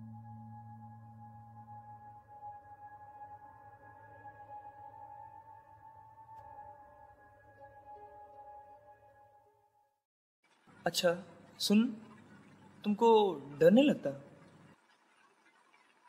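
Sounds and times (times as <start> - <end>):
low hum: 0.0 - 7.3.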